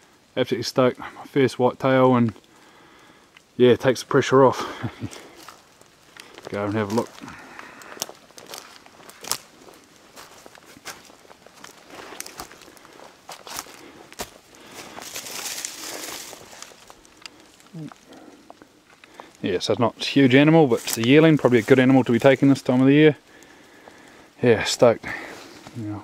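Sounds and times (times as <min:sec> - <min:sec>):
footsteps through undergrowth: 0:04.8 - 0:19.5, 0:20.1 - 0:24.2, 0:25.0 - 0:26.0
twigs snapping underfoot: 0:04.9 - 0:19.4
fronds brushing past: 0:08.4 - 0:17.8.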